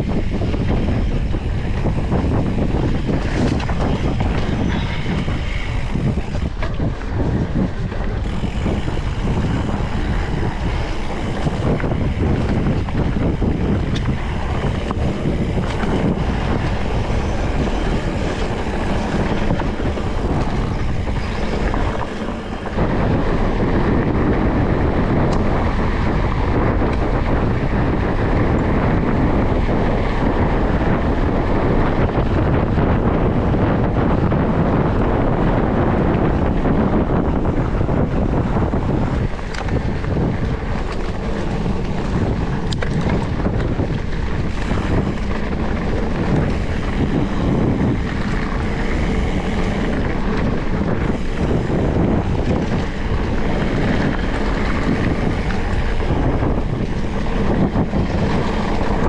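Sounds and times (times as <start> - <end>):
bike rattling: 0.0 - 59.0
bike tyre rumble: 0.0 - 59.0
wind rushing over microphone: 0.0 - 59.0.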